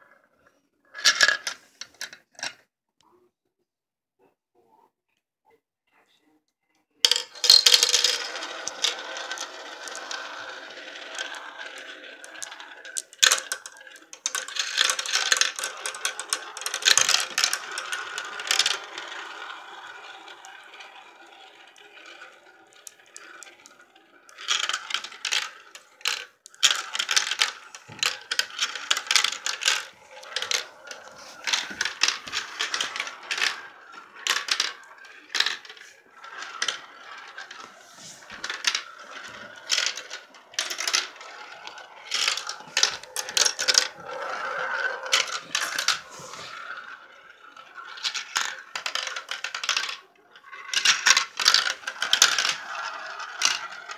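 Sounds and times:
marbles rolling in plastic bowls: 0.9 - 2.6, 7.0 - 53.9
marbles clicking together: 7.1 - 53.9.

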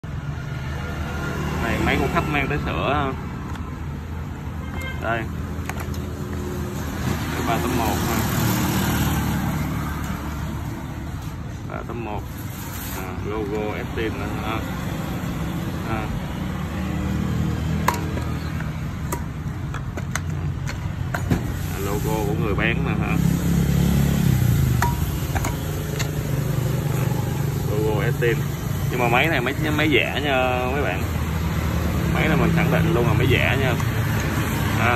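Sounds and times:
engine humming: 13.3 - 34.9.

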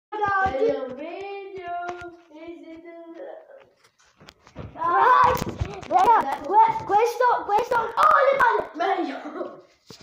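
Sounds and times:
child singing: 0.2 - 3.6.

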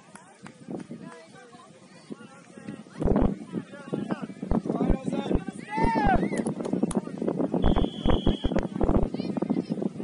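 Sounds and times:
loud shout: 5.6 - 6.4
low thumps: 7.6 - 9.1.

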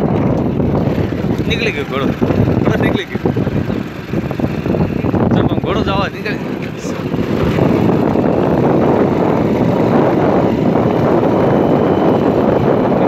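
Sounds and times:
vehicle running: 0.0 - 13.0
wind buffeting microphone: 0.0 - 13.0.

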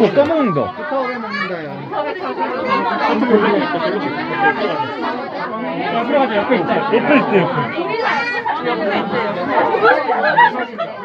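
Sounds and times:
overlapping voices: 0.0 - 11.0.

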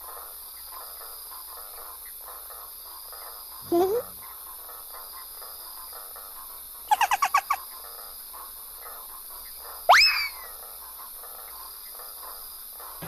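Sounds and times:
short pitched animal chirps: 3.6 - 4.2, 6.9 - 7.6, 9.9 - 10.5.

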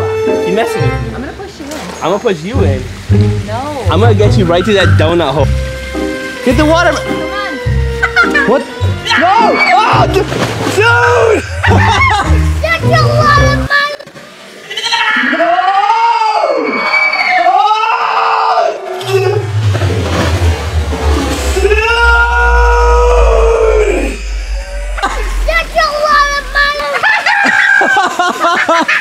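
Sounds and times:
people laughing: 7.9 - 8.8, 11.4 - 12.5, 26.9 - 29.0
slowed-down splash into pool: 10.0 - 14.3, 19.0 - 29.0
deep slowed-down voices: 19.0 - 27.0
low rumble: 19.0 - 27.1
voices: 21.6 - 27.7.

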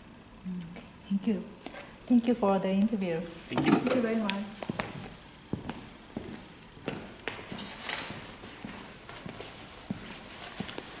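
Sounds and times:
footsteps on hard floor: 4.6 - 11.0.

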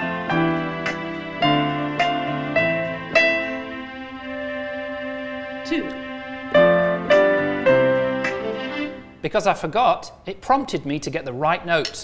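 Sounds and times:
piano note struck: 0.0 - 5.0.

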